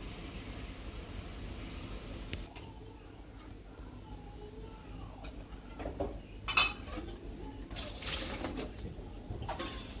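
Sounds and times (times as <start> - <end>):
water pouring into sink: 7.7 - 8.9.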